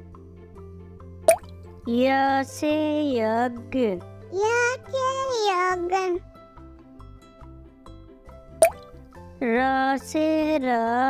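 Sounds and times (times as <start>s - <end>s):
water drop bloop effect: 1.3s - 1.6s, 8.6s - 8.9s
children's song backing music: 1.8s - 7.1s, 9.3s - 11.0s.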